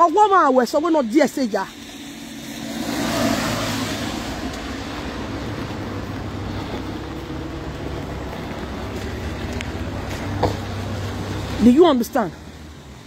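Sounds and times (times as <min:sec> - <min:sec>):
traffic on a wet street: 0:00.0 - 0:13.0
low engine hum: 0:01.4 - 0:13.0.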